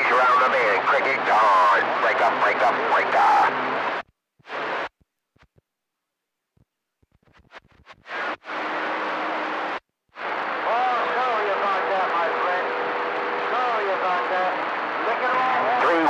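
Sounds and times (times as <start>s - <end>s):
garbled radio voice: 0.0s - 3.6s, 13.5s - 16.0s
radio static hiss: 0.0s - 5.5s, 7.0s - 16.0s.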